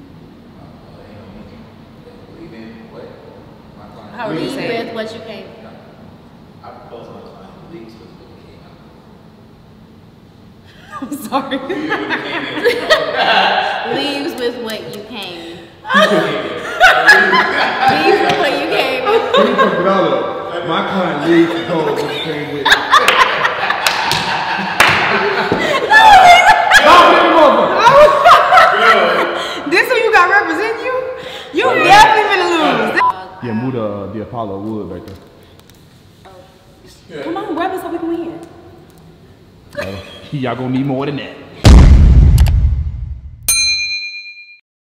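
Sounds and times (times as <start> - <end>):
women shrieking with laughter: 15.8 - 17.9, 25.4 - 29.4
hand claps: 23.0 - 25.2
low rumble: 41.6 - 43.5
notification bell ding: 43.5 - 44.6.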